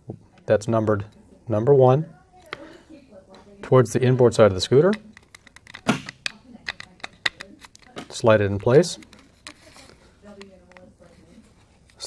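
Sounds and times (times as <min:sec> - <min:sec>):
plastic controller clicks and taps: 0:04.8 - 0:09.6.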